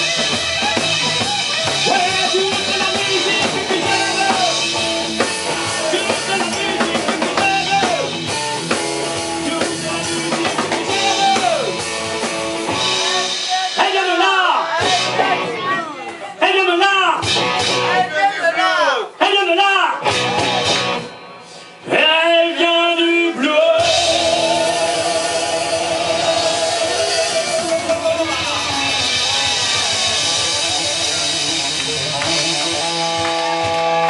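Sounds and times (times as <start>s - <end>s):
live rock band playing: 0.0s - 18.4s, 19.2s - 34.0s
man singing: 1.7s - 8.3s, 9.3s - 11.8s, 13.0s - 15.6s, 21.8s - 29.0s.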